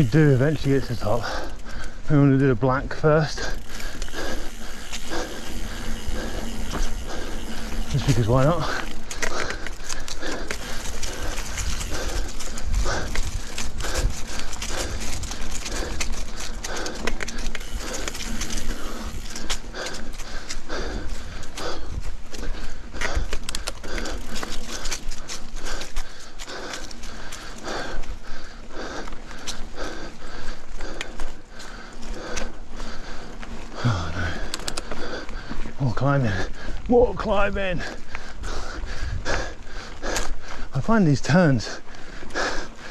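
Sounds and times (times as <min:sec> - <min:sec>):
person breathing hard: 0:00.0 - 0:02.1, 0:03.0 - 0:36.9, 0:37.6 - 0:42.9.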